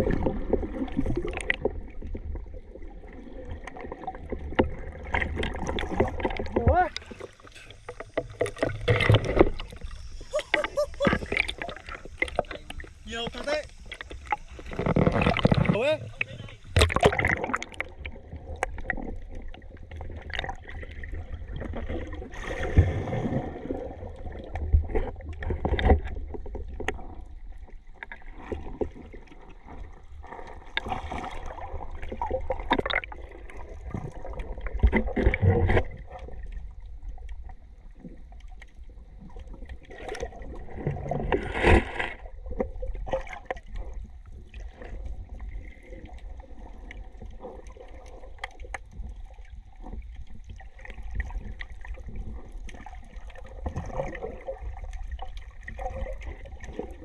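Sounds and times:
water sloshing and gurgling: 0.0 - 57.0.

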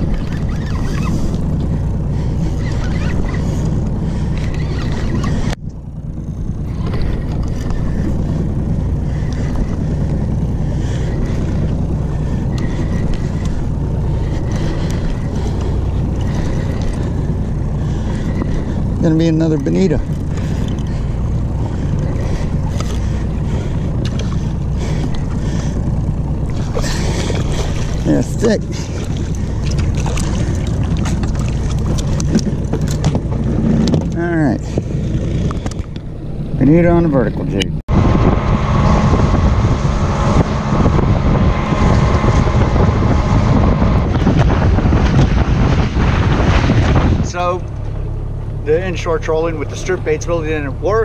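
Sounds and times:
wind on microphone: 0.0 - 37.0, 37.7 - 48.2
low rumble: 0.0 - 51.0
outboard motor running: 0.0 - 51.0.

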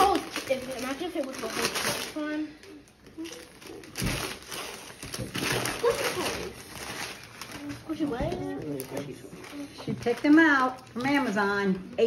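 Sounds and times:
paper tearing and crinkling: 0.0 - 2.3, 3.2 - 11.1.

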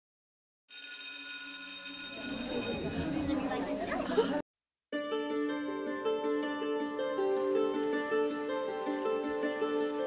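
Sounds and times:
bell ringing: 0.7 - 3.1.

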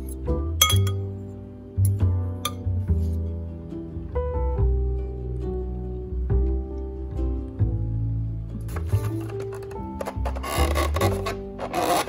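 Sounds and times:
background music: 0.0 - 12.0
fork clinking against ceramic bowl: 0.6 - 1.0.

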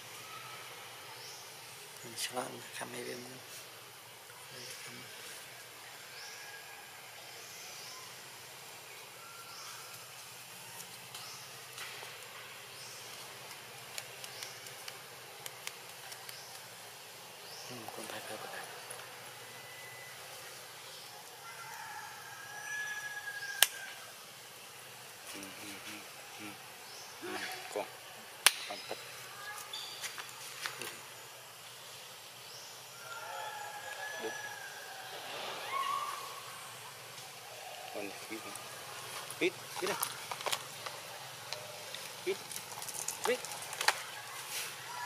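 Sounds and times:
insects humming: 0.0 - 45.0
high bird chirps: 29.7 - 30.2.

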